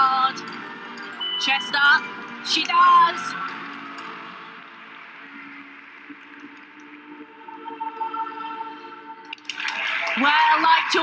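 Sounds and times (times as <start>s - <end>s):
music with long held notes: 0.0s - 9.9s
crowd applause: 9.3s - 11.0s
crowd cheering loudly: 9.5s - 11.0s.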